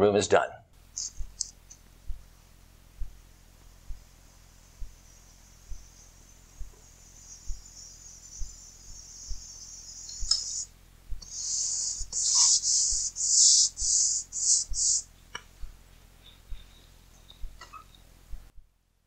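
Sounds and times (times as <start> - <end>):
faint high hiss: 0.8 - 18.5
soft low thumps: 1.0 - 9.5, 15.4 - 16.7, 17.3 - 17.6, 18.3 - 18.7.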